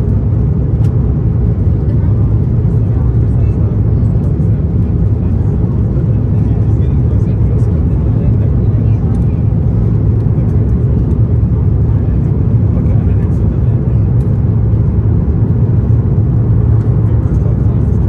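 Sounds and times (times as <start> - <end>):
airplane cabin engine roar: 0.0 - 18.0.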